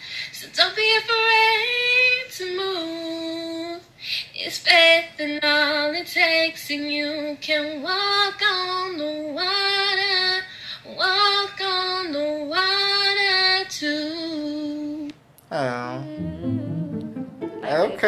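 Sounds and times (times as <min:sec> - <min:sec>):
woman singing solo: 0:16.0 - 0:17.4.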